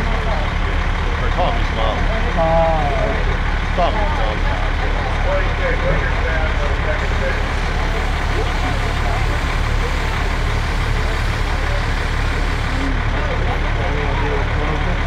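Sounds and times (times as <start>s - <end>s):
diesel engine rumbling: 0.0s - 15.0s
distant voices: 0.0s - 15.0s.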